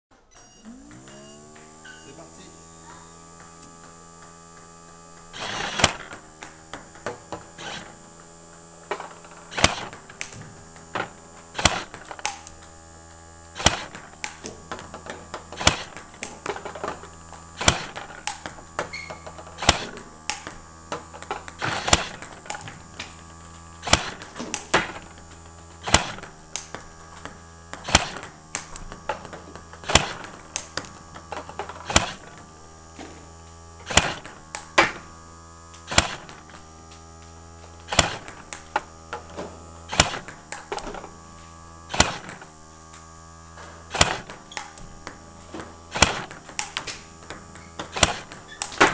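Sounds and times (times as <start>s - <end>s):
ping-pong balls clicking: 0.1s - 32.6s, 35.7s - 41.2s, 41.9s - 48.9s
balls bouncing on table: 0.4s - 12.7s, 13.6s - 33.2s, 43.9s - 48.9s
robot motor humming: 0.4s - 48.9s
paddle hitting ball: 17.6s - 23.2s, 25.7s - 32.4s, 33.8s - 35.0s, 35.9s - 36.4s, 37.8s - 41.1s, 41.9s - 42.5s, 43.9s - 48.9s.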